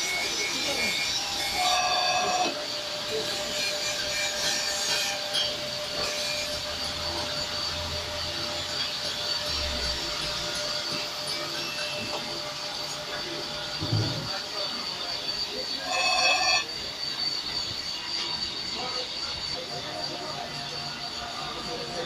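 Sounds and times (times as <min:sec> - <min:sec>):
grinding machine grinding metal: 0:00.0 - 0:22.0.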